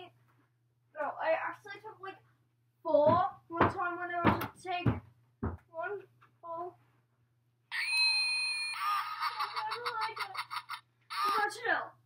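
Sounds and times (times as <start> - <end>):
shrill scream: 7.7 - 9.5.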